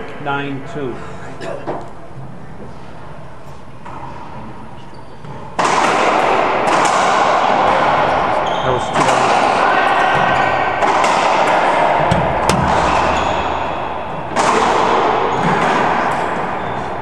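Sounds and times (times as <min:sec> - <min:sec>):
ball cracking off racquets and walls: 0:09.0 - 0:16.5.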